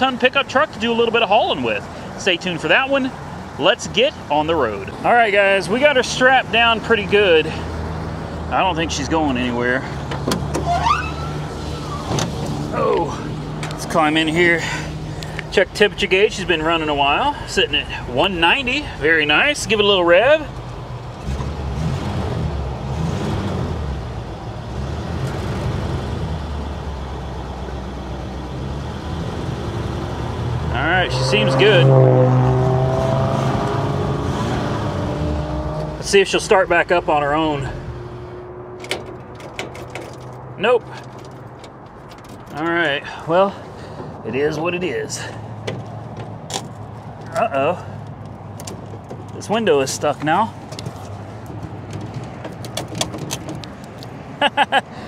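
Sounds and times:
door hinges squeaking: 0:10.1 - 0:12.5.

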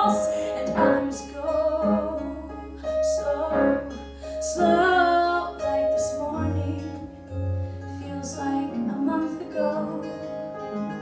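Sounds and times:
woman singing: 0:00.0 - 0:07.2, 0:07.9 - 0:10.4
instrumental accompaniment: 0:00.0 - 0:11.0.

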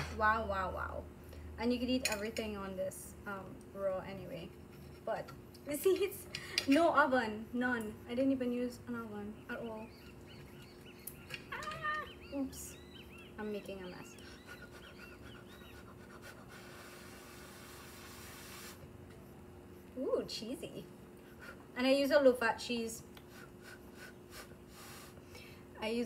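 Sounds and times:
faint steady hum: 0:00.0 - 0:26.0
birds chirping: 0:07.1 - 0:16.2
loud bird call: 0:10.4 - 0:15.9
breathy hiss: 0:16.2 - 0:18.8, 0:23.3 - 0:25.6
faint breathing: 0:23.3 - 0:25.8.

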